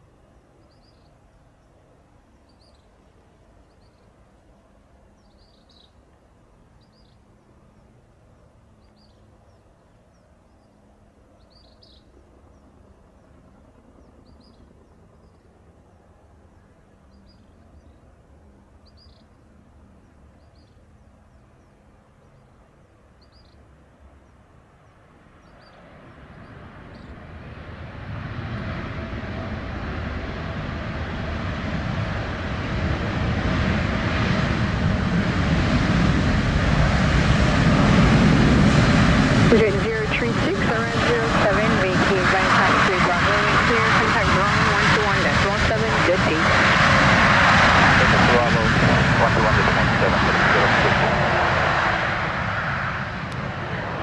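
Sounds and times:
jet engines reverse thrust rumble: 0.0s - 54.0s.

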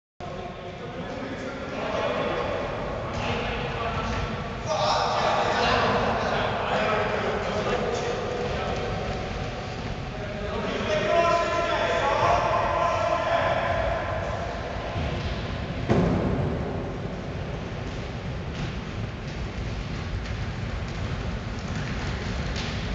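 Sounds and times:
voices talking and calling out: 0.3s - 15.2s
sharp thud: 15.0s - 17.0s
footsteps of players jogging: 17.6s - 22.9s.

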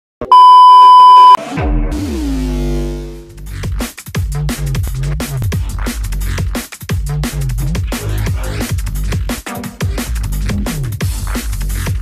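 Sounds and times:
high test tone beep: 0.3s - 1.4s.

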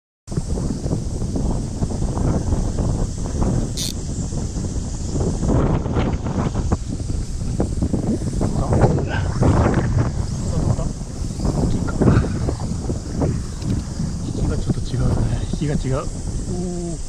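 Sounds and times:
wind buffeting microphone: 0.3s - 17.0s
steady high hiss: 0.4s - 17.0s.

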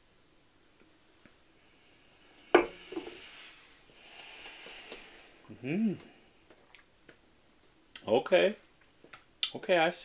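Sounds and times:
glass clinking on wooden table: 2.6s - 3.2s.

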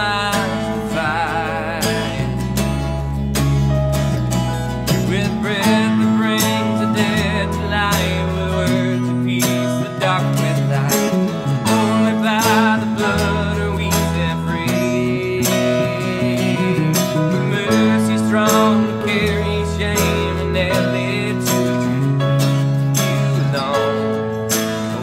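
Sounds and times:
man singing: 0.0s - 3.0s, 4.8s - 25.0s
electric bass: 0.0s - 25.0s
keyboard: 0.0s - 25.0s
strummed acoustic guitar: 0.0s - 25.0s.

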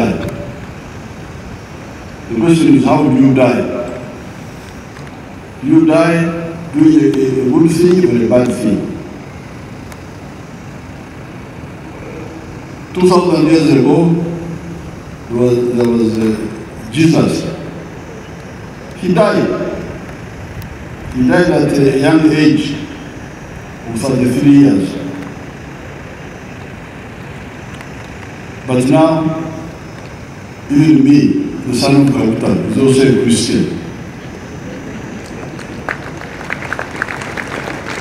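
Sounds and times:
steady background noise: 0.0s - 38.0s.

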